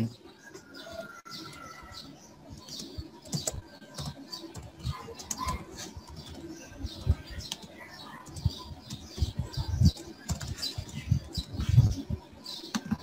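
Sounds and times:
computer keyboard keystrokes: 2.6s - 6.4s, 9.9s - 10.7s.

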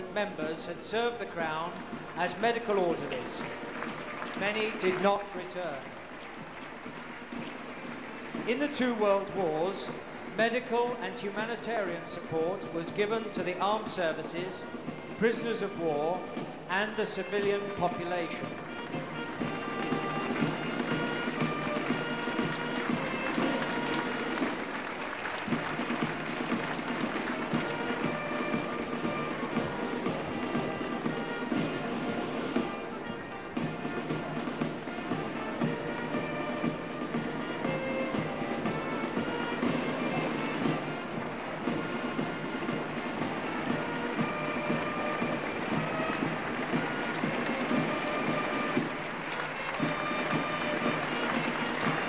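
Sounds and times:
drums beating: 0.0s - 52.0s
faint brass band music: 0.0s - 52.0s
bagpipes melody over drone: 17.4s - 52.0s.

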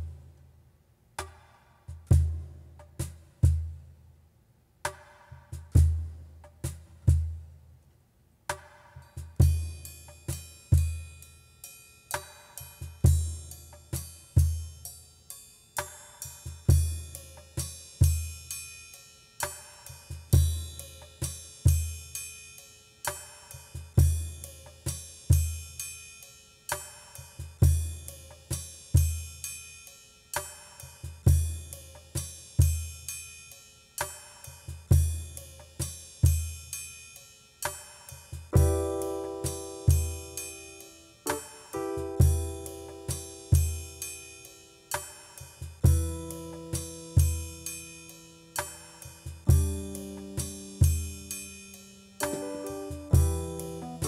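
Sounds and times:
slow drum beat: 1.2s - 3.9s, 8.5s - 11.2s, 12.2s - 14.9s, 15.8s - 18.5s, 19.5s - 22.2s, 23.1s - 25.8s, 37.7s - 54.0s
sustained keyboard notes: 41.3s - 43.9s, 49.5s - 51.3s, 52.2s - 54.0s.

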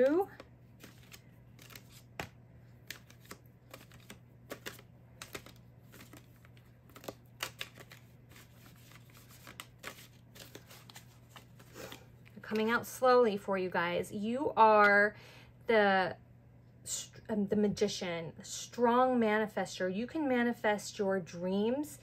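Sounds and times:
cards being shuffled: 0.0s - 12.7s.

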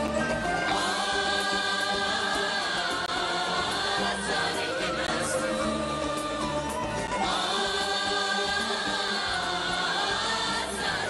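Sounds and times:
choir singing held chord: 0.7s - 11.0s.

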